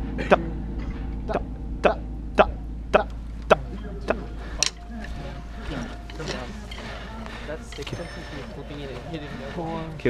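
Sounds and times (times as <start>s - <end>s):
sharp rhythmic clicks: 3.0s - 10.0s
people talking in background: 3.4s - 10.0s.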